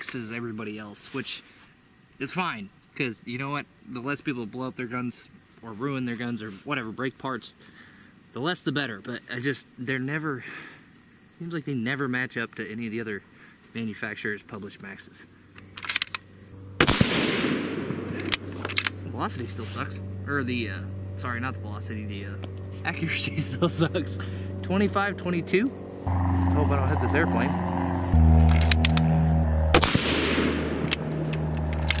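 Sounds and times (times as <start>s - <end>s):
propeller airplane droning: 15.4s - 32.0s
small clicks: 15.5s - 16.3s, 18.1s - 19.0s, 30.8s - 32.0s
sharp crack: 15.9s - 21.2s, 26.0s - 32.0s
long echo: 16.5s - 32.0s
rifle shot: 16.8s - 19.0s, 29.7s - 31.3s.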